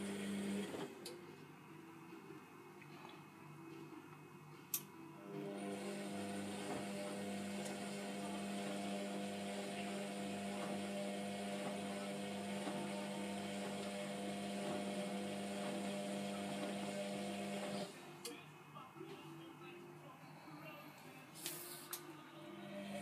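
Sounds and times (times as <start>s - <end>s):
washing machine motor humming: 0.0s - 1.0s, 5.2s - 18.0s, 22.6s - 23.0s.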